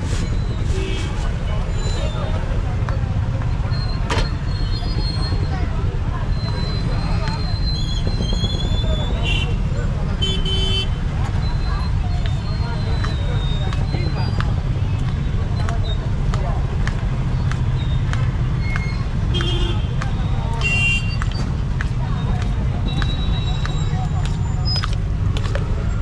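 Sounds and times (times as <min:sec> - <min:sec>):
traffic rumble: 0:00.0 - 0:26.0
car horn toots: 0:10.2 - 0:11.0.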